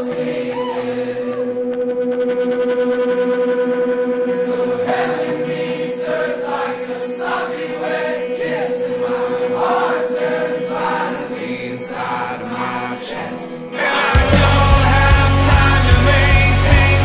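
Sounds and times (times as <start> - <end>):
group of voices singing: 0.0 - 1.8, 4.2 - 17.0
band holding steady note: 0.0 - 17.0.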